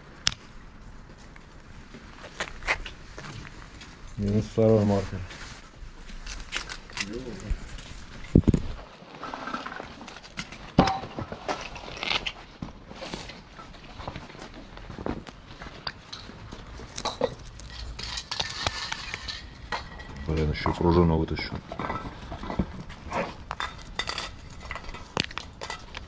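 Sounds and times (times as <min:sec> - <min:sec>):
person speaking indistinctly: 0:07.0 - 0:07.6
small objects clicking and knocking: 0:15.7 - 0:20.8, 0:21.4 - 0:26.0.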